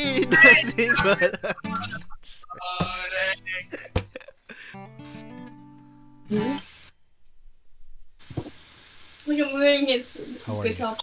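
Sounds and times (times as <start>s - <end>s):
acoustic guitar notes and strum: 0.0s - 6.9s.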